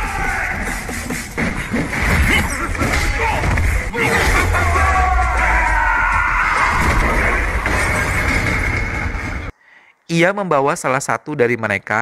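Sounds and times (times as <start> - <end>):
action film soundtrack: 0.0 - 9.6.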